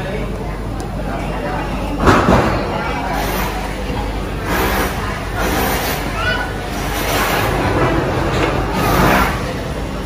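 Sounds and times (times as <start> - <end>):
loud kitchen clatter: 0.0 - 10.0.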